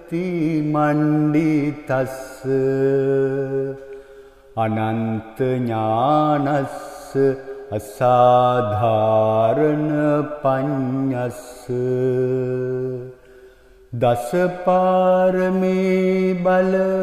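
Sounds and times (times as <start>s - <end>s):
man chanting: 0.0s - 4.0s, 4.6s - 13.3s, 13.9s - 17.0s.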